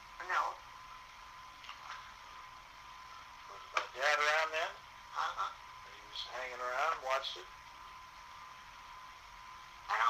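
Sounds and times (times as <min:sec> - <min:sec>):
faint hiss: 0:00.0 - 0:10.0.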